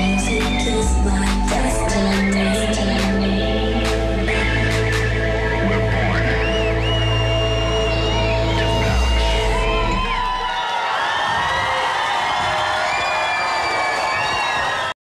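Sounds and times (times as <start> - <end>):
electronic dance music with bass: 0.0 - 10.7
crowd cheering and shrieking: 4.2 - 15.0
whistles: 4.9 - 10.6, 12.7 - 15.0.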